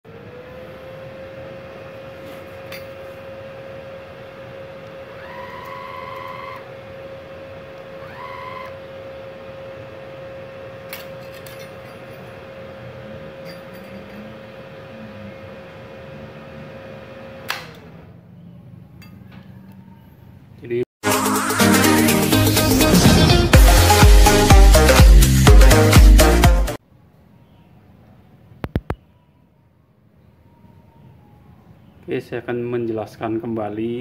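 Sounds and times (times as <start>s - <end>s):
welder electronic whine: 0.1s - 16.7s.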